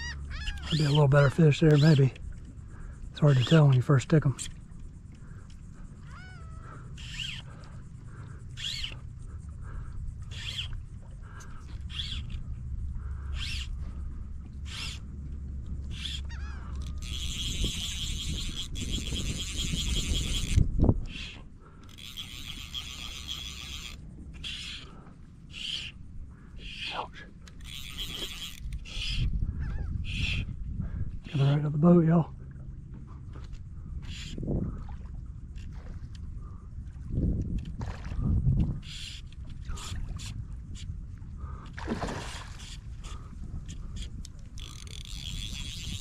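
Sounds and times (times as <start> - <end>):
fishing reel drag buzzing: 0.0 - 30.6, 38.6 - 46.0.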